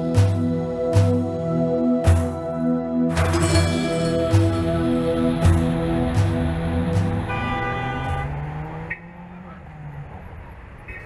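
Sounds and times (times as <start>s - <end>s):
background music: 0.0s - 9.0s
cars driving by: 3.2s - 11.0s.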